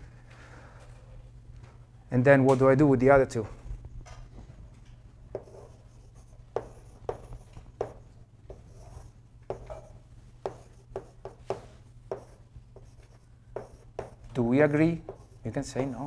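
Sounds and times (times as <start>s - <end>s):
low room hum: 0.0s - 16.0s
chalk strokes on chalkboard: 10.4s - 14.2s, 15.0s - 16.0s.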